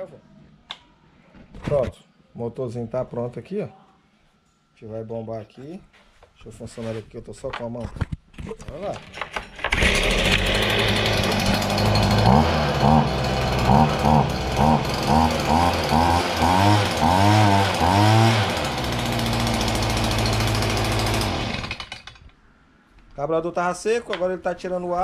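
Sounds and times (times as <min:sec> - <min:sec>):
leaf blower engine revving: 0:09.6 - 0:22.2.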